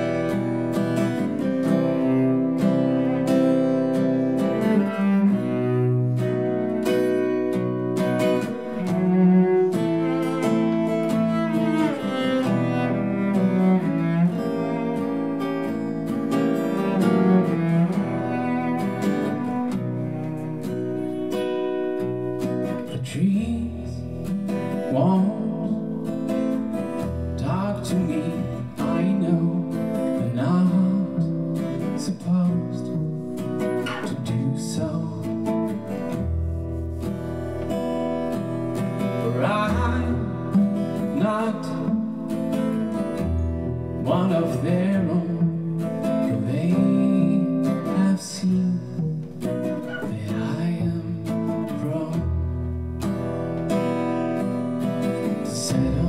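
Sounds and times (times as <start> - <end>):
acoustic guitar strumming chords: 0.0 - 56.0
cello holding low notes: 0.1 - 22.2.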